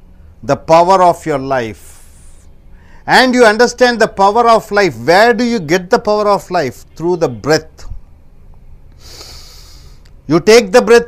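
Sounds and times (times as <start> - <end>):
man inhaling through nose: 1.9 - 3.1, 8.9 - 10.1.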